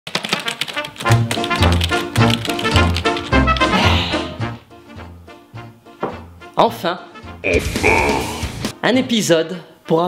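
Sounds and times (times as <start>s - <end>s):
rapid keyboard typing clicks: 0.1s - 3.7s.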